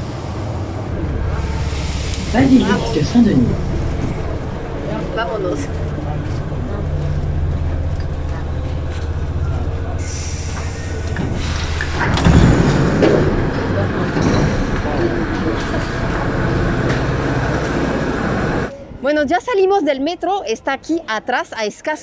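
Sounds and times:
train running hum: 0.0s - 19.1s
passengers' voices: 0.0s - 19.7s
train doors opening: 7.7s - 18.7s.

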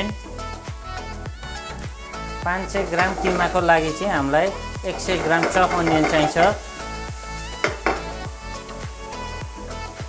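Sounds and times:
background music: 0.0s - 10.0s
onion sizzling in oil: 1.7s - 10.0s
pan knocks and scrapes: 2.6s - 3.8s, 4.9s - 6.8s, 7.6s - 8.3s.

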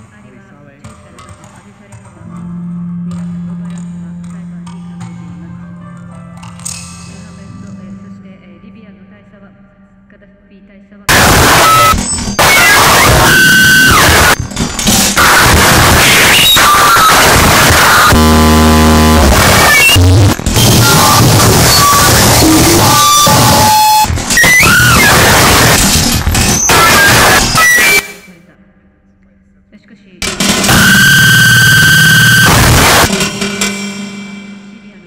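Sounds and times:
distorted electronic noise: 0.0s - 8.2s, 11.1s - 28.4s, 30.2s - 35.0s
low buzzing drone: 2.2s - 5.8s, 11.1s - 28.1s, 30.2s - 33.7s
pitch-bending whining tones: 11.1s - 28.2s, 30.3s - 33.2s.

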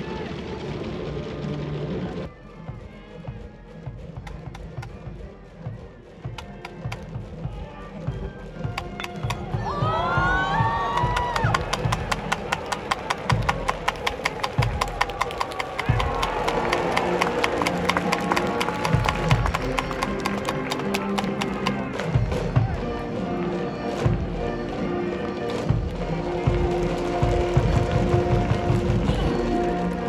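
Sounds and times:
drum hits and claps: 3.9s - 5.3s, 6.2s - 23.0s, 25.5s - 30.0s
melodic instruments: 8.8s - 14.2s.

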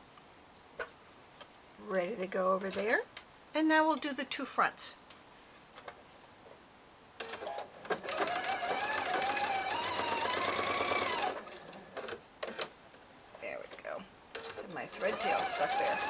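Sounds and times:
sewing machine stitching: 7.2s - 12.7s, 14.3s - 16.0s.

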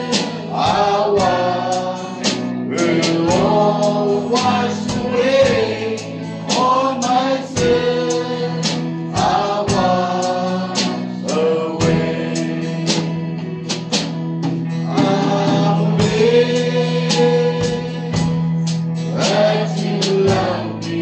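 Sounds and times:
man singing into microphone: 0.0s - 13.2s, 14.8s - 18.3s
instrumental accompaniment with beat: 0.0s - 21.0s.

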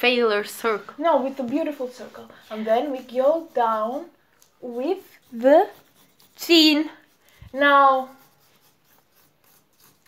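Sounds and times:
pencil scratching on paper: 0.6s - 10.0s.

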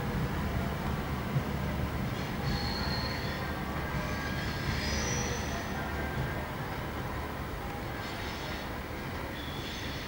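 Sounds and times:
low rumble of diesel engines: 0.0s - 10.0s
train wheels squealing: 2.2s - 5.8s, 7.9s - 8.7s, 9.3s - 10.0s.

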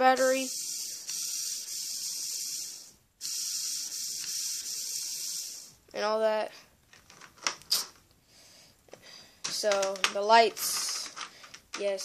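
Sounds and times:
sharp plastic clicks: 9.4s - 12.0s.

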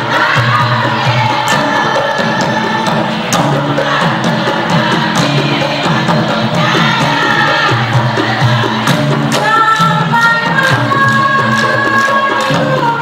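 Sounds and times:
sharp percussive hits: 0.0s - 13.0s
women's chorus singing in unison: 0.0s - 13.0s.

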